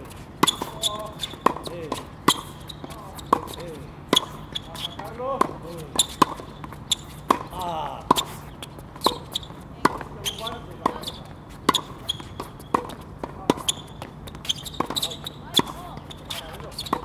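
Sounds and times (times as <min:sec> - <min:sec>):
shoes squeaking on court: 0:00.0 - 0:17.0
tennis ball bouncing: 0:00.0 - 0:17.0
tennis racket striking ball: 0:00.4 - 0:08.4, 0:09.0 - 0:17.0.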